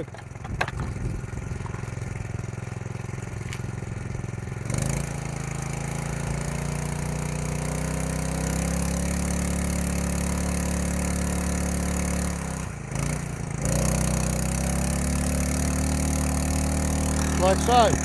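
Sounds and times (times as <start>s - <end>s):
small petrol engine revving: 0.0s - 18.0s.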